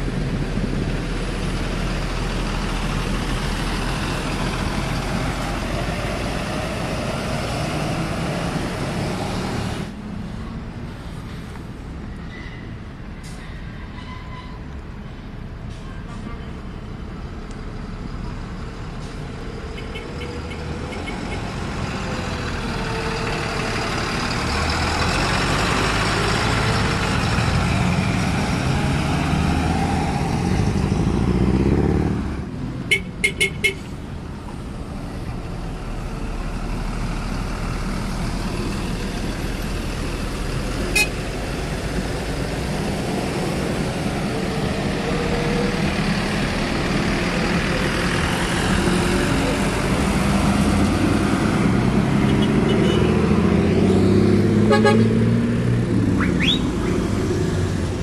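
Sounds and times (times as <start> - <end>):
bus engines pulling away: 0.0 - 58.0
horn toots: 40.9 - 41.2, 54.6 - 55.2.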